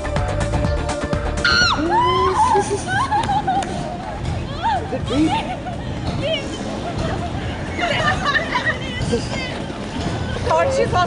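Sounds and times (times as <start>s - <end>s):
woman squealing and laughing: 1.4s - 3.6s
voices: 2.3s - 11.0s.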